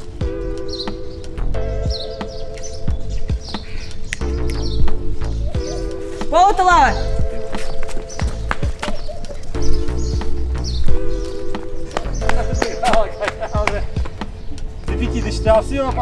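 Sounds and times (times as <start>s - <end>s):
background music with bass: 0.0s - 16.0s.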